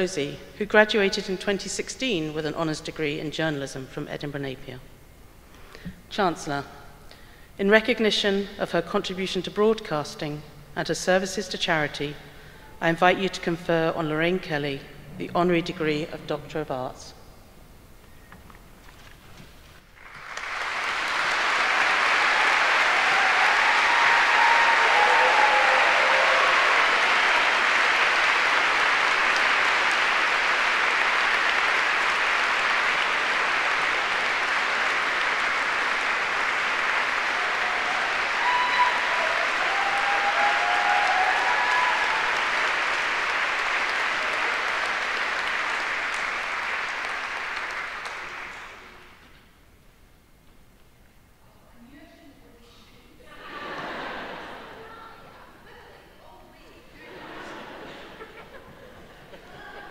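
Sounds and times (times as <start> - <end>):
audience applauding: 19.9 - 49.2.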